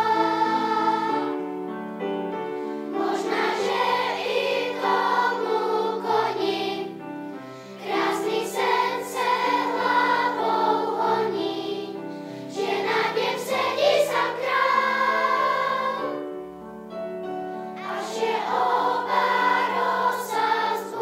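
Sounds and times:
children's choir singing: 0.0s - 1.7s, 2.7s - 16.4s, 17.7s - 21.0s.

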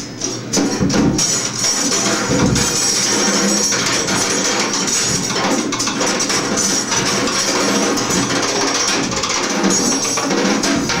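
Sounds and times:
drums and cymbals clattering: 0.0s - 11.0s.

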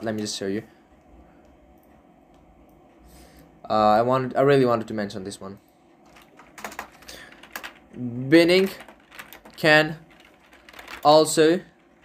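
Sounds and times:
keyboard keystrokes clicking: 6.1s - 7.8s.

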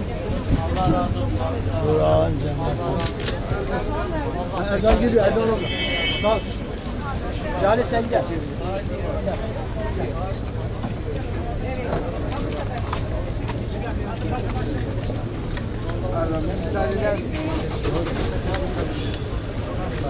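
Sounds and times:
people talking over one another: 0.0s - 20.0s.

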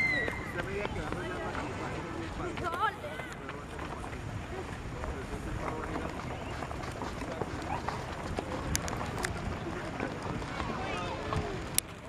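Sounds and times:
faint voices: 0.0s - 12.0s
wind rumbling on microphone: 0.0s - 12.0s.

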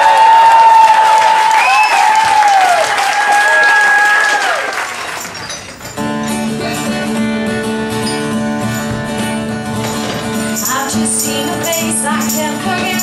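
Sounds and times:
whistles and cheers: 0.0s - 5.1s
audience applauding: 0.0s - 5.8s.

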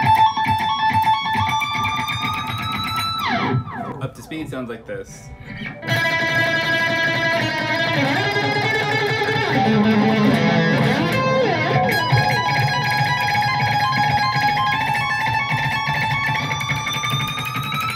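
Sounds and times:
electric guitar solo: 0.0s - 17.9s.

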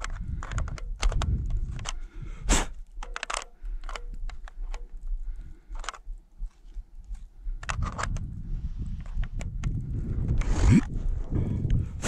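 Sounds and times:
wind rumble on microphone: 0.0s - 3.0s, 3.6s - 12.0s.

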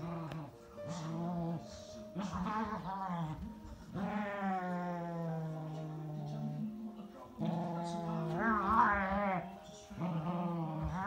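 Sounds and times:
dog growling: 0.0s - 6.8s, 7.4s - 11.0s.

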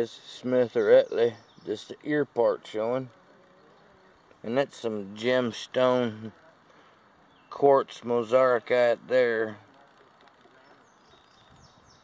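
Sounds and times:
bird chirping: 0.6s - 2.1s, 6.7s - 7.7s, 10.5s - 12.0s.

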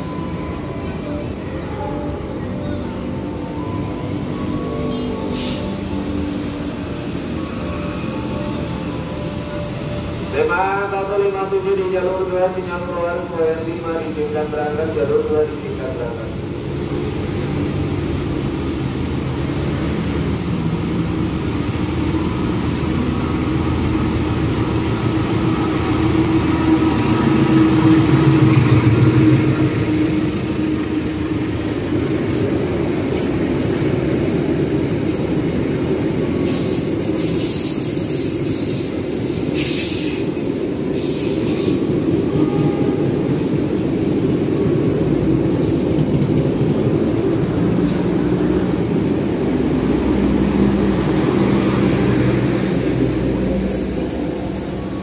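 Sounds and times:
coach wheels rumbling: 0.0s - 55.0s
diesel locomotive drone: 0.0s - 55.0s
high wheel squeal: 36.4s - 44.3s.

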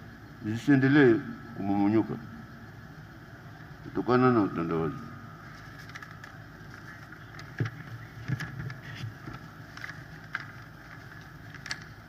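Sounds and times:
low steady rumble: 0.0s - 12.0s
faint clicks and knocks: 5.6s - 12.0s.

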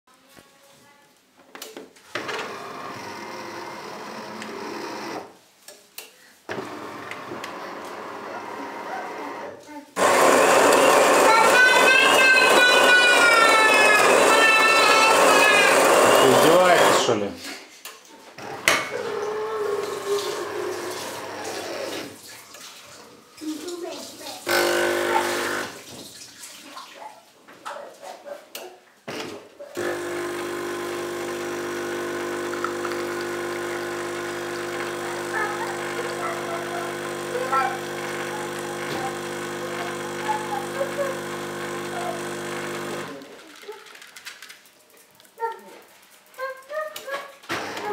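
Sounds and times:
coffee grinder motor: 2.2s - 5.3s, 6.5s - 17.2s, 18.5s - 22.2s, 24.4s - 25.8s, 29.8s - 43.4s
espresso pump running: 2.2s - 5.3s, 6.5s - 17.1s, 18.9s - 22.1s, 24.5s - 25.8s, 29.8s - 43.3s.

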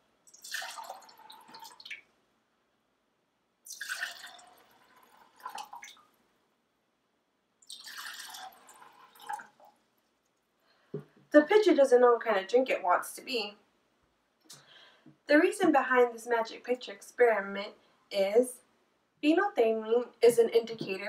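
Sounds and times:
liquid pouring into glasses: 0.3s - 2.0s, 3.7s - 6.1s, 7.6s - 9.8s.

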